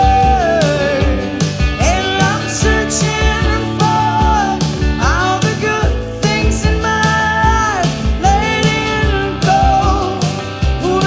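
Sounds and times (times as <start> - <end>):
live rock band playing: 0.0 - 11.0
woman singing: 0.0 - 11.0.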